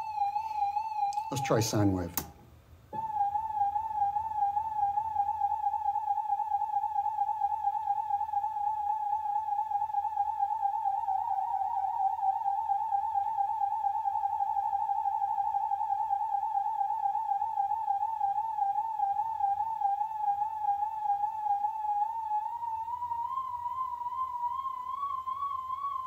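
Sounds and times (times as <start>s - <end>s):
sine-wave tone with vibrato: 0.0s - 2.2s, 3.0s - 26.0s.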